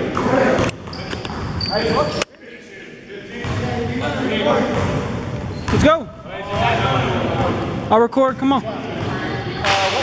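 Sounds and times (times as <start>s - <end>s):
players chattering: 0.0s - 10.0s.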